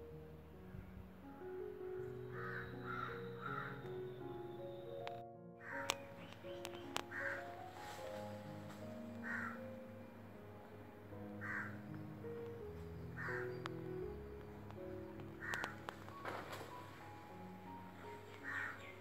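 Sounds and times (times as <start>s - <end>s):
slow held background music: 0.0s - 19.0s
crow cawing: 2.3s - 3.8s, 5.6s - 6.0s, 7.1s - 7.5s, 9.2s - 9.6s, 11.4s - 11.8s, 13.2s - 13.6s, 15.4s - 15.8s, 18.4s - 19.0s
faint clicks: 5.8s - 7.3s, 14.4s - 16.8s.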